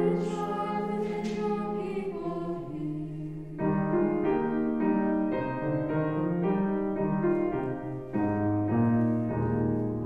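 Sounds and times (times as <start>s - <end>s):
group singing a hymn: 0.0s - 3.5s.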